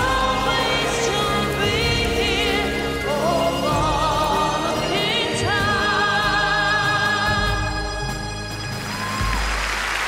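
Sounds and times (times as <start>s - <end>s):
woman singing with vibrato: 0.0s - 8.3s
orchestral accompaniment: 0.0s - 10.0s.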